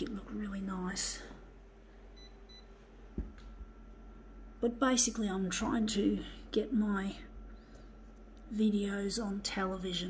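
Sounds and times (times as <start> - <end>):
soft thump: 3.1 - 3.5.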